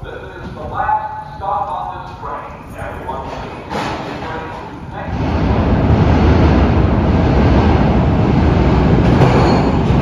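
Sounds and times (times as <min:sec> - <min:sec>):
subway platform rumble: 0:00.0 - 0:10.0.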